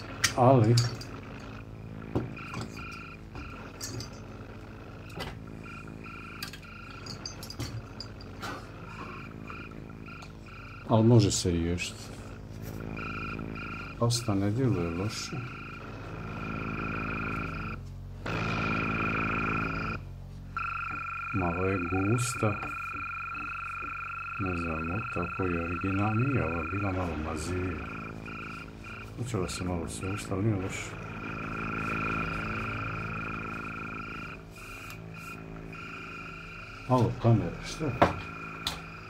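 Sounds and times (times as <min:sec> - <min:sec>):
buzzing hum with high whine: 0:00.0 - 0:39.0.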